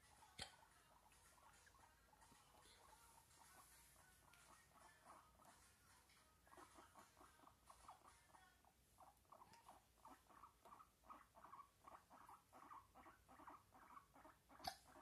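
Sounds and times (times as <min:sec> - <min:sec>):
guinea pig squeaking: 0:00.0 - 0:15.0.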